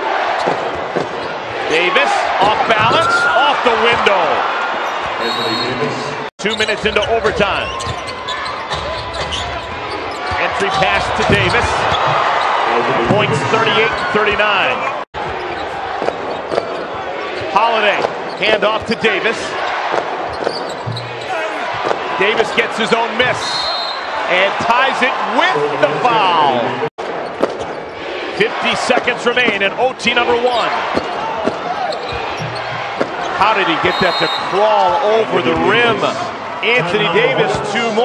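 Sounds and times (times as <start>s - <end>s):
arena crowd noise: 0.0s - 38.0s.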